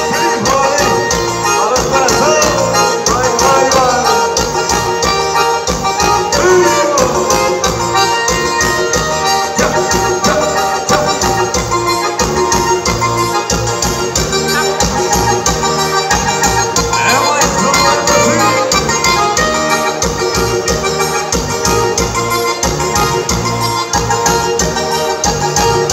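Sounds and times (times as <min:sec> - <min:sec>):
organ-like keyboard lead: 0:00.0 - 0:25.9
steady beat: 0:00.0 - 0:25.9.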